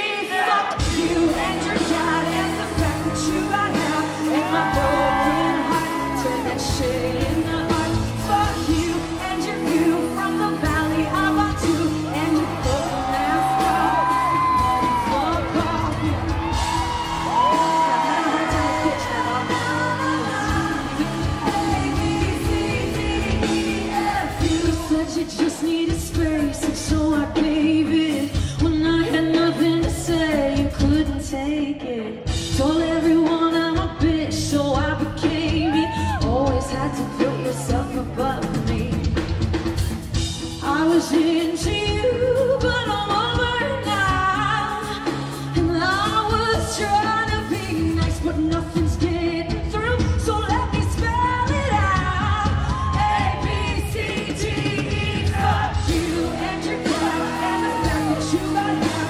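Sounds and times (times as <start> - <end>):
woman singing into microphone: 0.0 - 39.8, 40.6 - 59.0
live pop-rock band: 0.0 - 59.0.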